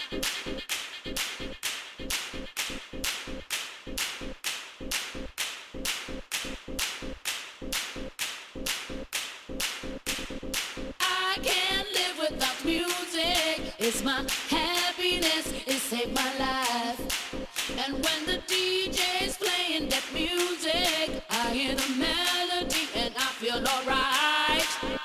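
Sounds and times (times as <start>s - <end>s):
clap-like dance beat: 0.0s - 25.0s
person singing: 11.0s - 25.0s.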